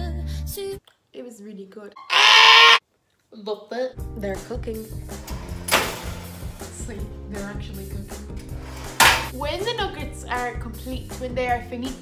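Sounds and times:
woman squealing: 0:02.0 - 0:02.8.

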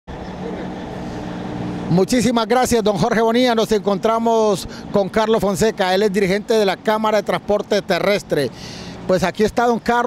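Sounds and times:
traffic noise: 0:00.1 - 0:10.0
vehicle motor humming: 0:00.1 - 0:10.0.

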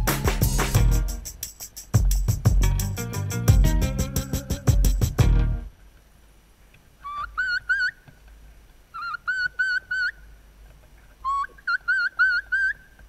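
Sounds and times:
turkey high whistled calls: 0:07.0 - 0:08.1, 0:08.9 - 0:10.3, 0:11.2 - 0:13.0.

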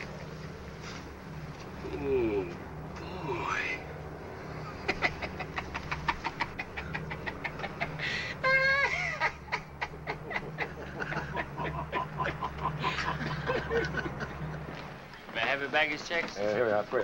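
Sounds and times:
steady low drone: 0:00.0 - 0:15.8
man laughing heartily: 0:04.5 - 0:14.8.

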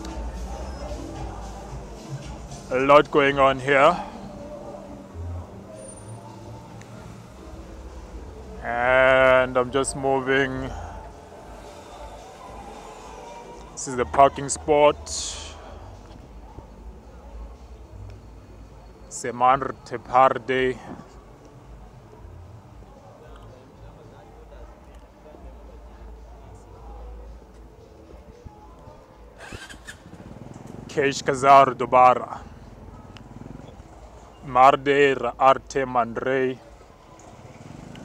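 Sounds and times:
faint voices: 0:00.0 - 0:34.5.

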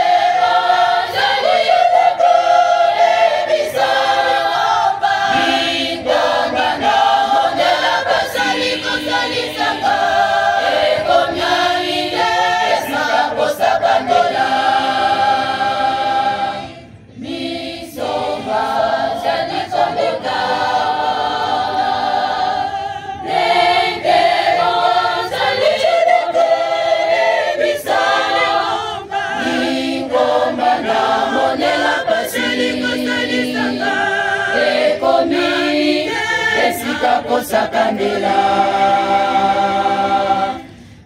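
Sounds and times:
women's choir singing a cappella: 0:00.0 - 0:41.0.

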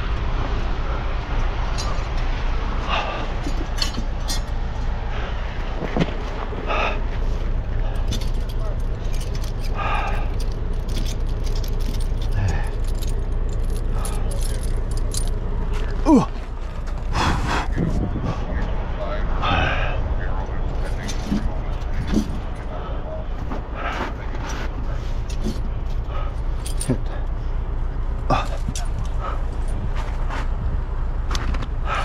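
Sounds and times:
tire chains clinking: 0:00.0 - 0:17.8, 0:18.5 - 0:32.0
truck engine idling: 0:00.0 - 0:32.0.

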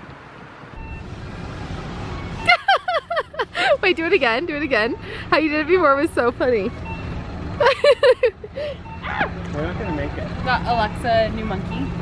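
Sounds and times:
street traffic rumble: 0:00.0 - 0:12.0
woman laughing: 0:02.5 - 0:04.0, 0:07.6 - 0:08.8.

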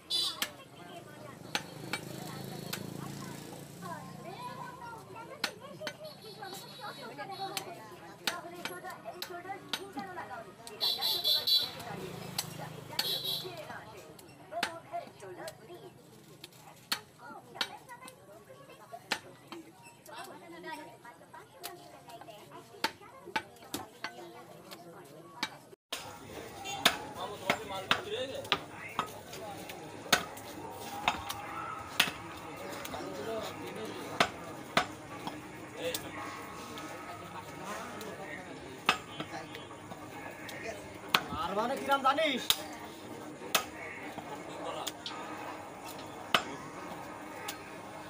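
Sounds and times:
meat cleaver chopping on wood: 0:26.7 - 0:29.1, 0:30.1 - 0:32.2
cleaver chopping onto wooden block: 0:32.0 - 0:32.2.

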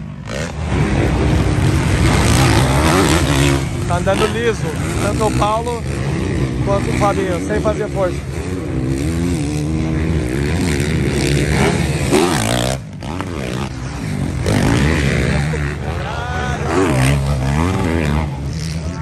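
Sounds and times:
motocross bike engines revving: 0:00.0 - 0:19.0.

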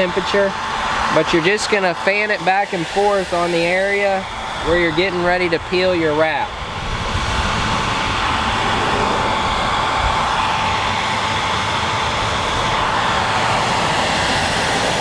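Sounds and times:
hair dryer running: 0:00.0 - 0:15.0.

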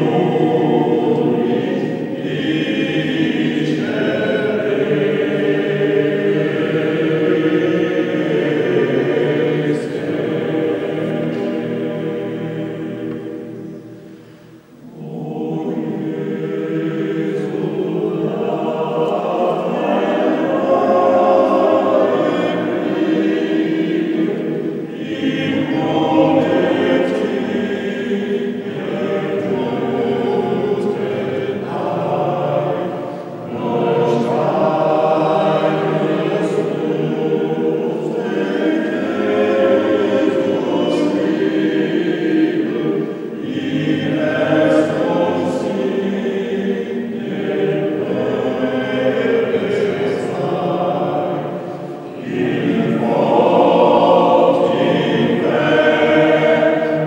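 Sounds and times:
mixed choir singing: 0:00.0 - 0:57.0.

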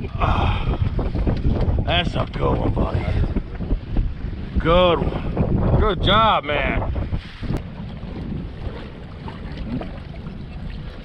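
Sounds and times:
waves washing against hull: 0:00.0 - 0:11.0
wind buffeting microphone: 0:00.0 - 0:11.0.

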